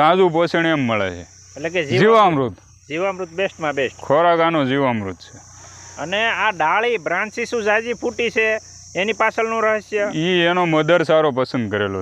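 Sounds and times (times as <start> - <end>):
high insect drone: 0.0 - 12.0
man talking: 0.0 - 12.0.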